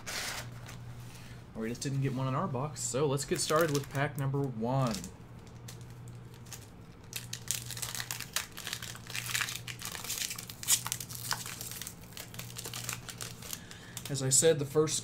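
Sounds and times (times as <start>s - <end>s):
foil wrapper tearing and crinkling: 3.3s - 4.1s, 4.8s - 14.4s.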